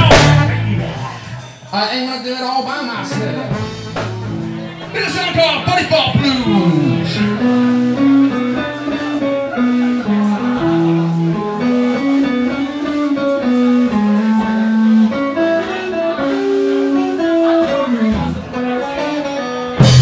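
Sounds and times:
low bass line: 0.0 - 1.4, 6.4 - 16.2
guitar playing held notes: 0.0 - 1.7, 3.0 - 20.0.

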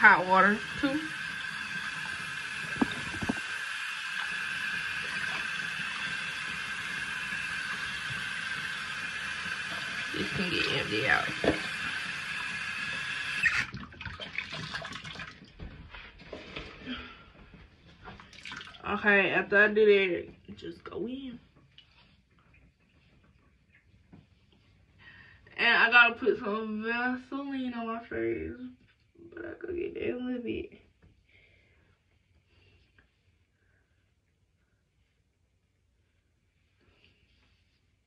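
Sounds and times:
water splashing and dripping: 0.0 - 15.8, 18.0 - 18.9
tap running water: 0.0 - 16.8, 18.0 - 19.0
faint soft rustles: 20.2 - 25.4, 30.7 - 38.0.

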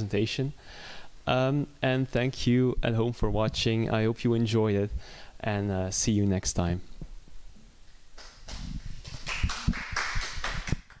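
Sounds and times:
audience clapping: 8.2 - 11.0.

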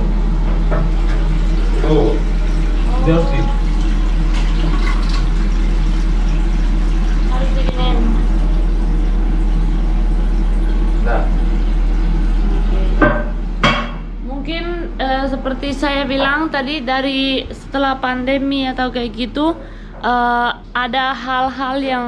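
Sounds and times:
water running into cistern: 0.0 - 22.0
sharp knocks: 13.0 - 14.1.

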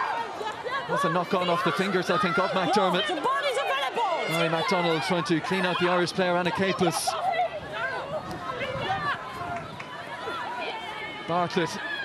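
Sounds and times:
players calling out: 0.0 - 12.0
spectators shouting: 0.0 - 12.0.

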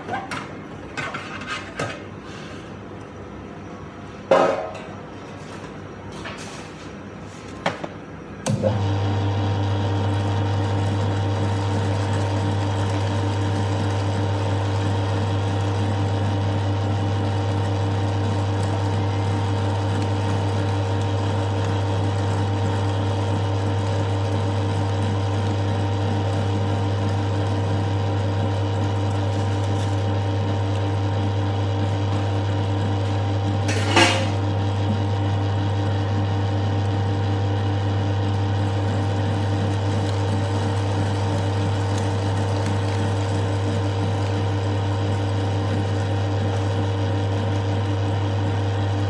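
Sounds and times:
electric meat grinder running: 8.5 - 49.0.

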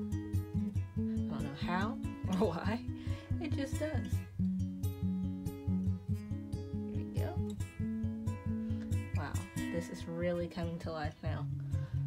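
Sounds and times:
plucked acoustic guitar music: 0.0 - 12.0.

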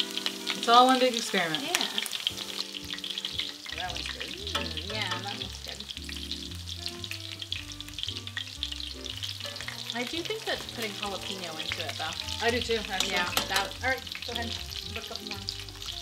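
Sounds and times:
food sizzling in hot oil: 0.0 - 16.0.

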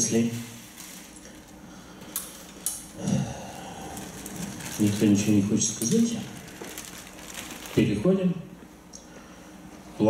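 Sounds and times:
plastic bag rustling: 0.0 - 1.6, 3.5 - 8.2
faint low murmur: 1.3 - 10.0.

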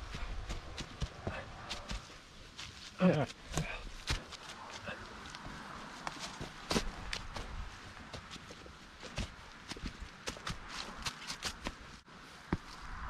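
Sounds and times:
footsteps on dry leaves: 0.0 - 13.0.

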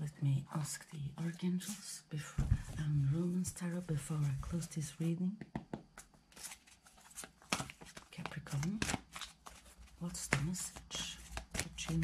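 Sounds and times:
cards being shuffled: 6.0 - 12.0.

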